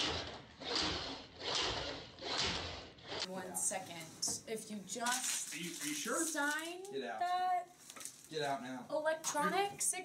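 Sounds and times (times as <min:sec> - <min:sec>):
toy truck rolling on wood: 0:00.0 - 0:03.3.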